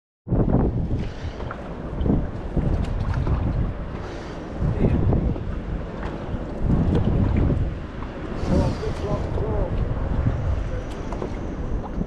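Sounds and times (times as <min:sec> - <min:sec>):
wind rumbling on microphone: 0:00.3 - 0:12.0
paddle splashing in water: 0:00.9 - 0:12.0.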